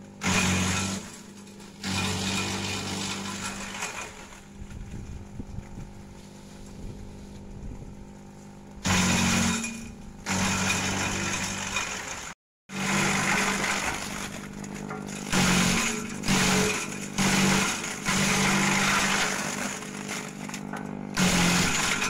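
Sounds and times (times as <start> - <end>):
shredder chopping branches: 0.0 - 7.5, 8.4 - 22.0
shredder motor hum: 0.0 - 22.0.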